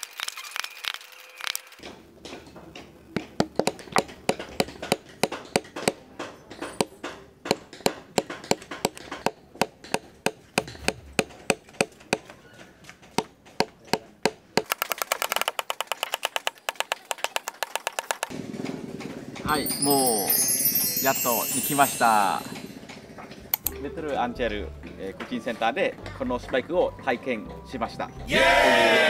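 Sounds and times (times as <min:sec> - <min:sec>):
mallet striking metal chisel: 0:02.3 - 0:12.3.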